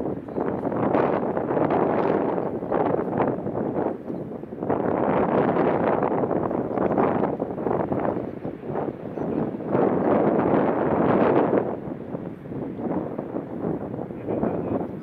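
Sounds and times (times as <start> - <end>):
wind gusts on microphone: 0.0 - 15.0.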